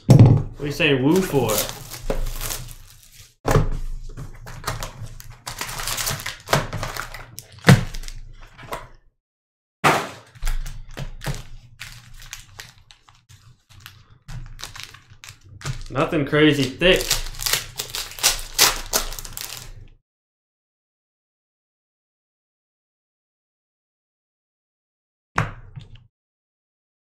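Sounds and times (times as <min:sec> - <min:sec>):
foil packs crinkling: 0:00.7 - 0:03.4, 0:04.3 - 0:08.8, 0:10.1 - 0:19.9.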